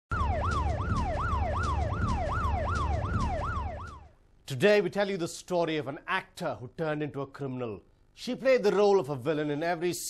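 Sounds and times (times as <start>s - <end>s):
yelping siren: 0.1s - 4.2s.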